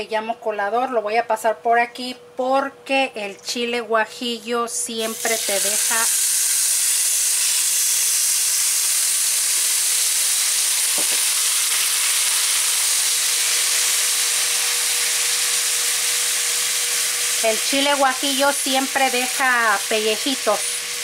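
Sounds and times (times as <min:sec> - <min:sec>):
sauce sizzling in oil: 0:05.0 - 0:21.0.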